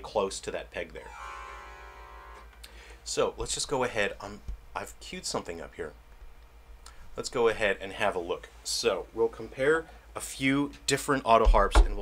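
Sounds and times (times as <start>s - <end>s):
autoharp chord strummed: 1.0s - 2.5s.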